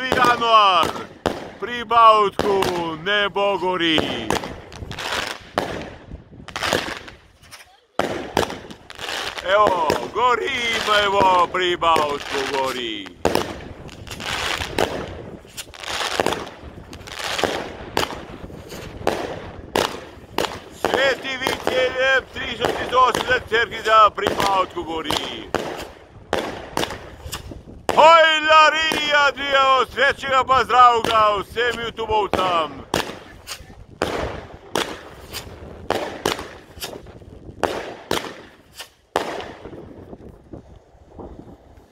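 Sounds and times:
crackle of bursting sparks: 0.0s - 41.9s
fireworks bangs: 0.0s - 41.9s.

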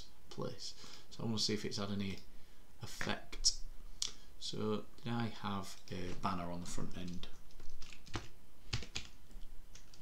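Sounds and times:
computer keyboard typing: 6.9s - 10.0s.

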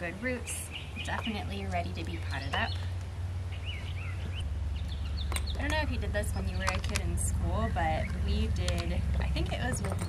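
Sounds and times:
bird chirping: 0.0s - 10.0s
steady low hum: 0.0s - 10.0s.

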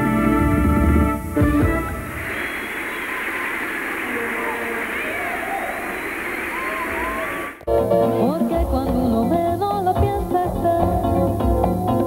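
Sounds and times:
studio audience applauding: 1.5s - 7.7s.

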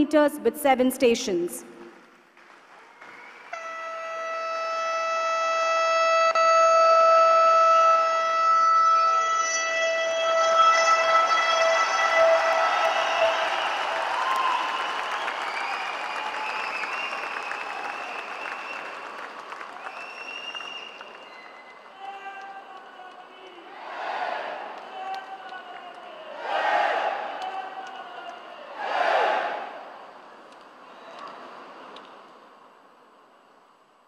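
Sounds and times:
crowd applauding: 2.1s - 4.2s, 11.0s - 23.8s, 24.4s - 29.6s
train horn long note: 3.5s - 12.7s.

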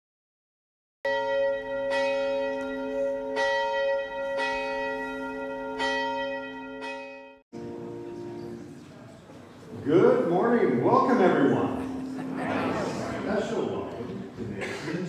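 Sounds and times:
church bell ringing: 1.1s - 8.4s.

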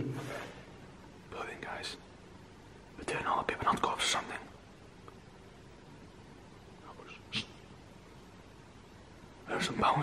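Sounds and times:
man whispering: 1.3s - 2.1s, 3.0s - 4.6s, 6.8s - 7.6s, 9.4s - 10.0s.

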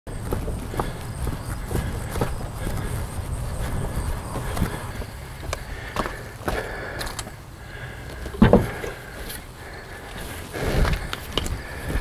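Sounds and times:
steady low rumble: 0.1s - 12.0s
footsteps knocking: 8.4s - 9.0s.

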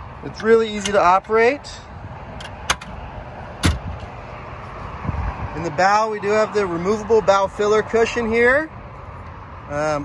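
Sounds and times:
latch clicking: 2.4s - 3.0s, 3.6s - 4.1s.

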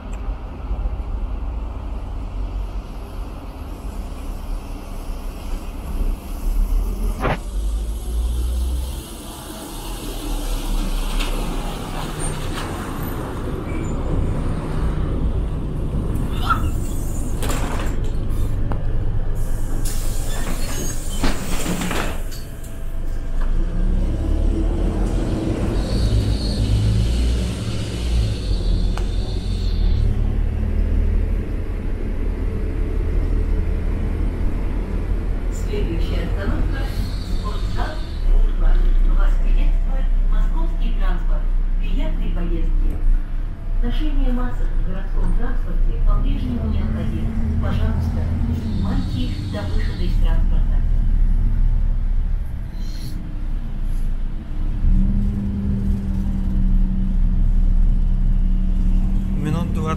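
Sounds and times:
bus diesel engine rumbling: 0.0s - 59.9s
compressed air hisses: 19.4s - 21.1s.

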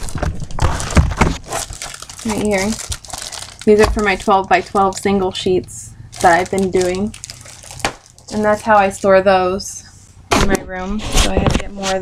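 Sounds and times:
plastic wrapping crinkling: 0.0s - 9.3s.

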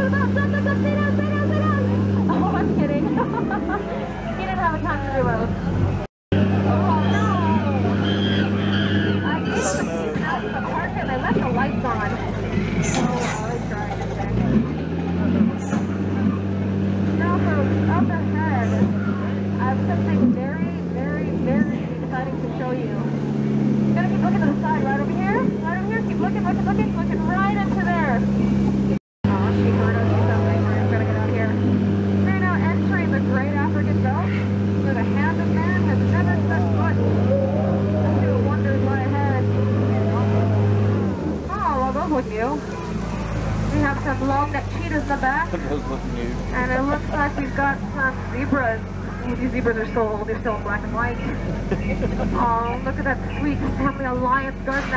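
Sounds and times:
boat motor humming: 0.0s - 54.9s
indistinct chatter: 0.0s - 54.9s.

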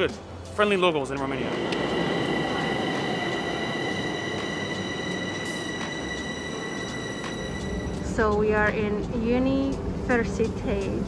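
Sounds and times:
metro train rumble: 0.0s - 11.0s.

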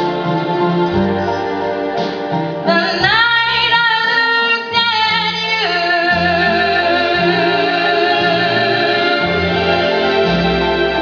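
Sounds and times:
keyboard accompaniment: 0.0s - 11.0s
woman singing into microphone: 2.6s - 9.6s.

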